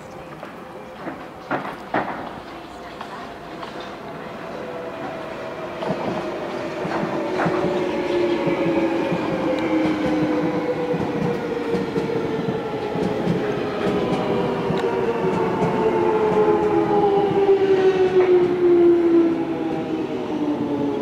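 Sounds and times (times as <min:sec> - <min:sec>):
wheels rumbling on rail: 0:00.0 - 0:21.0.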